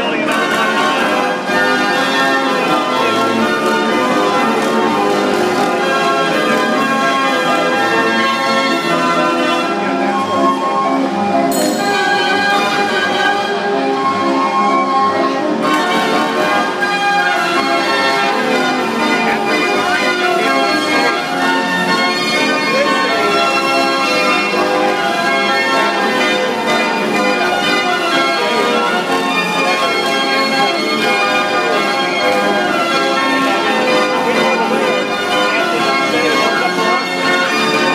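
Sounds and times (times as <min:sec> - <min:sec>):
band organ playing a tune: 0:00.0 - 0:37.9.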